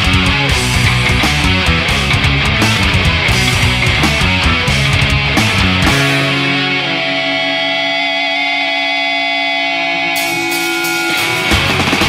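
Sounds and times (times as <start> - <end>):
distorted electric guitar chord: 0.0 - 12.0.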